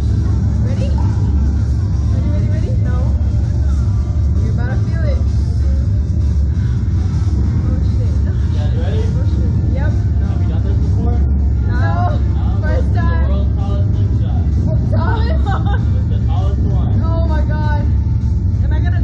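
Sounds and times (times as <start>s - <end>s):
background music: 0.0s - 19.0s
loud low rumble: 0.0s - 19.0s
scattered voices: 0.0s - 19.0s.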